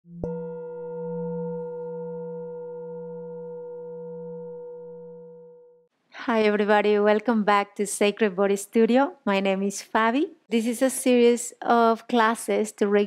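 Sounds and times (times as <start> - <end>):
singing bowl ringing: 0.1 - 5.9.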